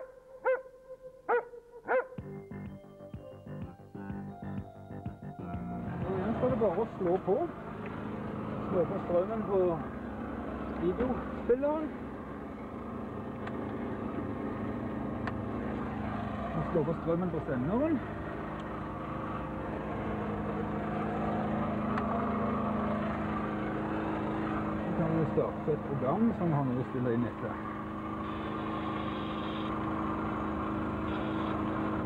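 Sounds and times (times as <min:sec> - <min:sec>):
dog barking sharply: 0:00.0 - 0:00.7, 0:01.3 - 0:02.2
steady low hum: 0:01.1 - 0:32.0.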